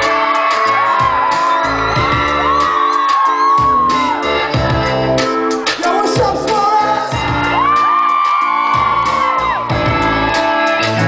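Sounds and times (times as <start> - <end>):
audience whooping: 0.0 - 4.6, 7.3 - 11.0
pop-rock band playing loudly: 0.0 - 11.0.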